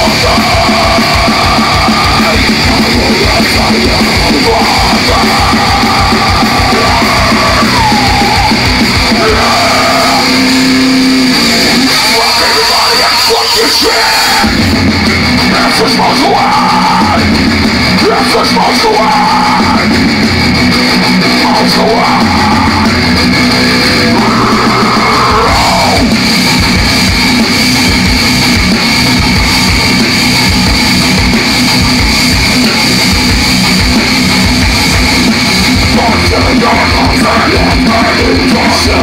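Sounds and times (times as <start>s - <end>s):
shouted vocals: 0.0s - 10.9s, 11.5s - 14.6s, 15.5s - 17.4s, 18.0s - 20.0s, 21.4s - 23.0s, 23.7s - 26.2s, 35.9s - 39.0s
metal band playing live: 0.0s - 39.0s.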